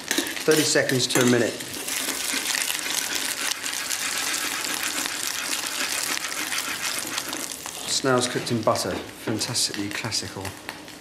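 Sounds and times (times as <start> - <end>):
snails sizzling in butter: 0.0 - 10.5.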